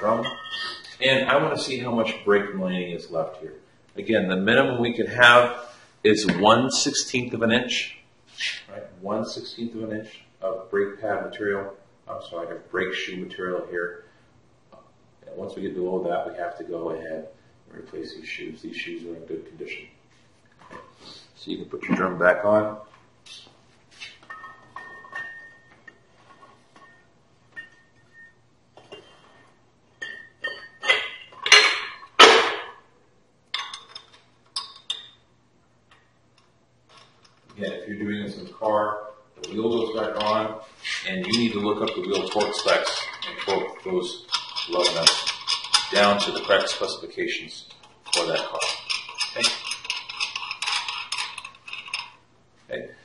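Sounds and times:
metal clinks: 0.0 - 1.0, 30.0 - 32.3
metal drum scraping: 0.0 - 1.8.

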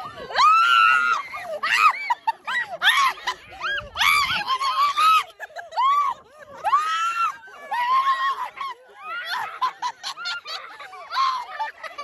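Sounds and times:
people laughing: 0.0 - 12.0
people squealing excitedly: 0.0 - 12.0.

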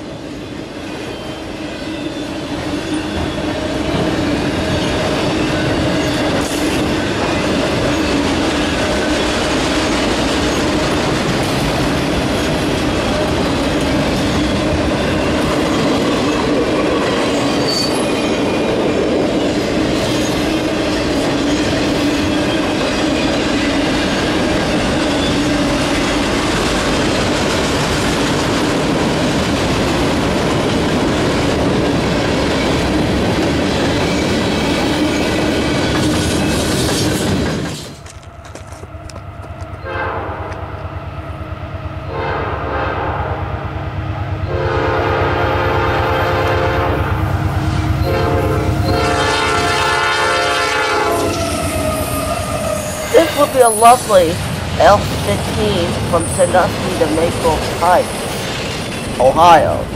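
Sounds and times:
freight cars clickety-clack: 2.9 - 39.8, 53.1 - 59.8
locomotive horn blasts: 39.8 - 40.6, 42.1 - 43.4, 44.5 - 47.0, 48.0 - 53.5.

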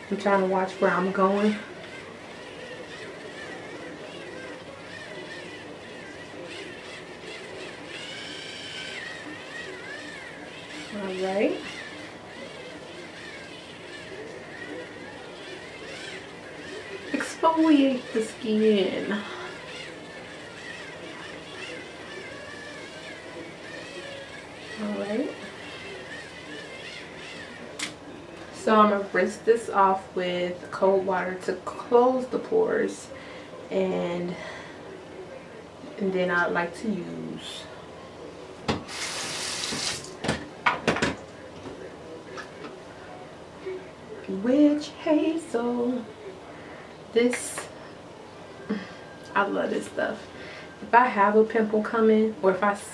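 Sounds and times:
electric cleansing brush whirring: 0.0 - 33.1, 38.7 - 40.2
sink tap running: 38.8 - 40.2.

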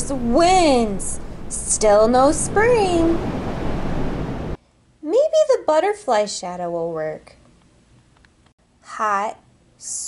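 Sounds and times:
rushing wind: 0.0 - 4.6.

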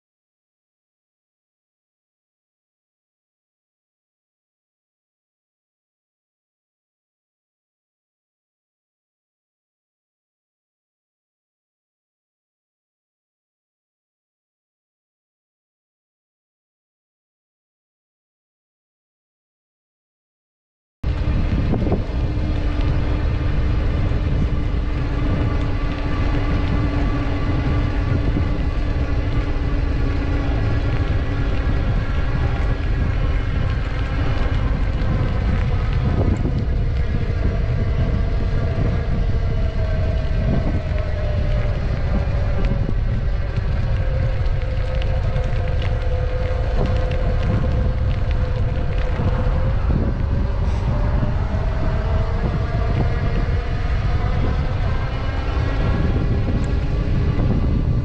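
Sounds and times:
faint hum drifting in pitch: 21.0 - 58.0
wind buffeting microphone: 21.0 - 58.0.

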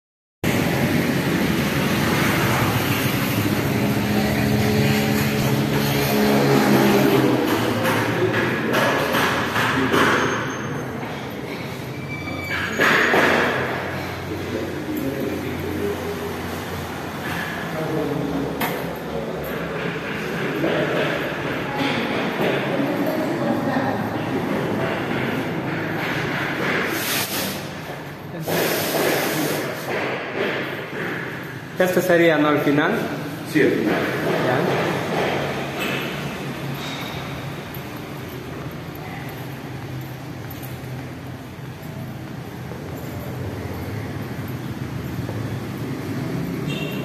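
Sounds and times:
traffic noise: 0.4 - 47.0
motor engine passing: 0.5 - 8.7.

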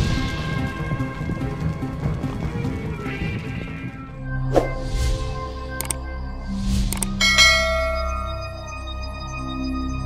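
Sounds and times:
bell chime ringing: 7.2 - 9.4.

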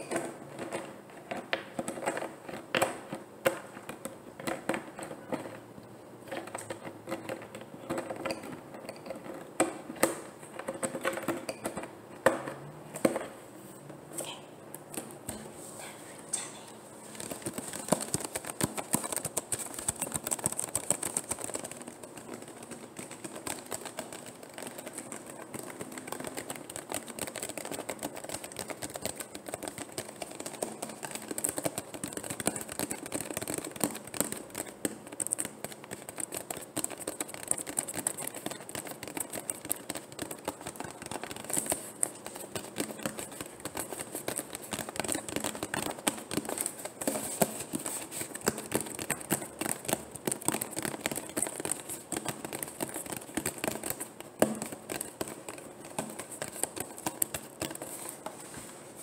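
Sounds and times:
fingernails tapping plastic bottle: 17.2 - 58.4.

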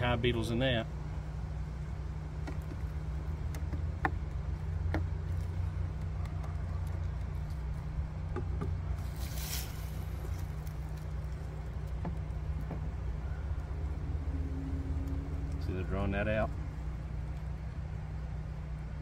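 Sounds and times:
steady low hum: 0.0 - 19.0
scraping rustle: 8.9 - 12.2.

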